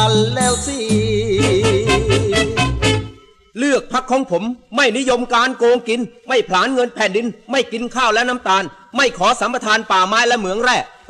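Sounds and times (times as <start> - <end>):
bass and shaker beat: 0.0 - 3.0
man singing long vibrato note: 0.0 - 3.5.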